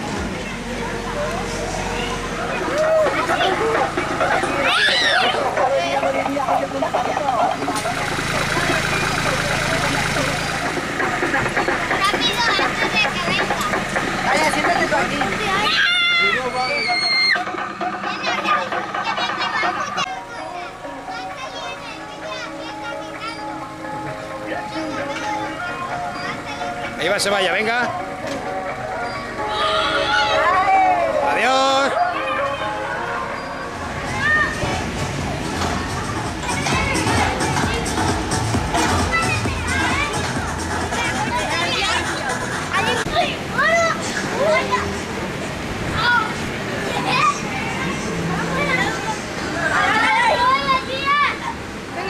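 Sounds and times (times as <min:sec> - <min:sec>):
children chattering and calling: 0:00.0 - 0:52.0.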